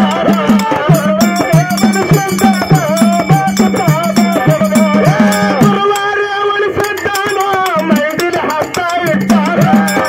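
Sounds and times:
drum beating: 0:00.0 - 0:10.0
man singing through pa: 0:00.0 - 0:10.0.

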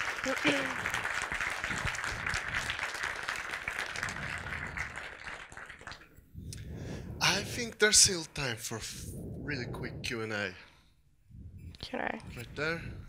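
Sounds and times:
audience applauding: 0:00.0 - 0:06.1.

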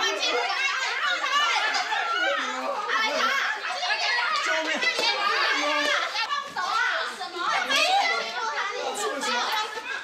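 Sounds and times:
excited high-pitched voices shouting: 0:00.0 - 0:10.0.

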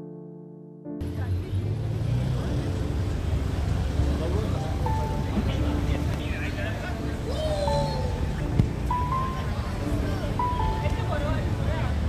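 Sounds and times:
car traffic rumble: 0:01.0 - 0:12.0
people chattering: 0:01.0 - 0:12.0.

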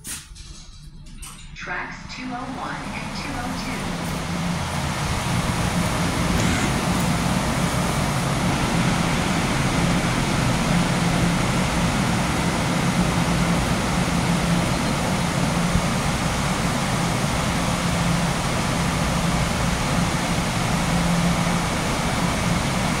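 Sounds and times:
loud mechanical drone: 0:01.6 - 0:23.0.

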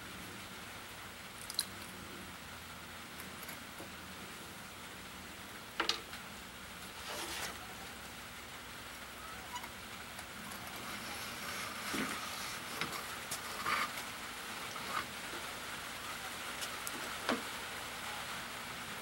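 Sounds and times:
steady hiss: 0:00.0 - 0:19.0.

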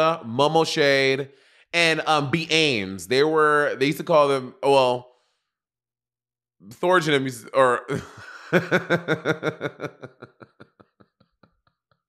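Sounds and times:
person laughing: 0:07.9 - 0:12.0.

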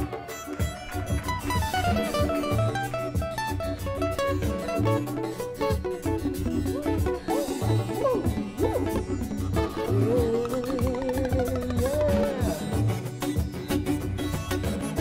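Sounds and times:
guitar solo: 0:00.0 - 0:15.0
steady beat: 0:00.0 - 0:15.0
repeating bass line: 0:01.1 - 0:13.2.

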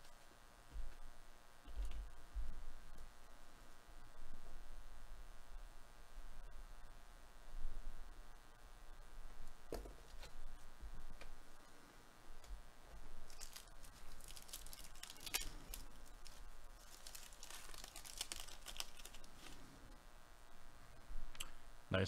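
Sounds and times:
wrapper tearing and crinkling: 0:13.2 - 0:19.7.

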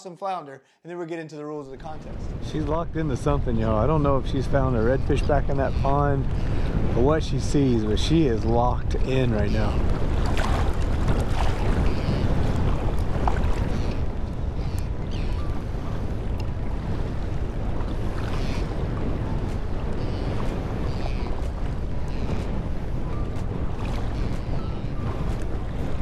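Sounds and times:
wind buffeting microphone: 0:01.9 - 0:26.0
small waves lapping: 0:02.1 - 0:26.0.

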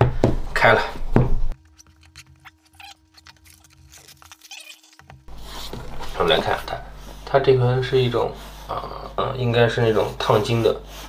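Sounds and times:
blade slitting plastic wrap: 0:01.6 - 0:05.2
faint steady hum: 0:05.0 - 0:11.0.

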